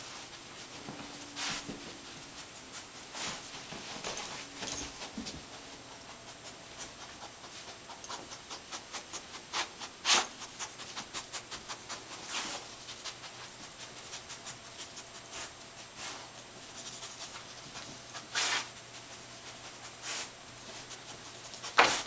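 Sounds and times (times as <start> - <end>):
dog sniffing: 0.0 - 22.0.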